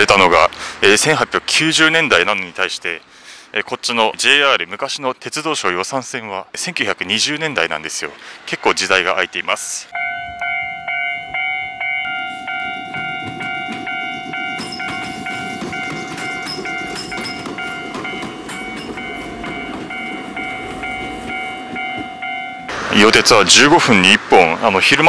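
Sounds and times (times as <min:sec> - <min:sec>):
level crossing alarm clanging: 0:09.9 - 0:22.7
train wheels clicking on rails: 0:10.9 - 0:25.0.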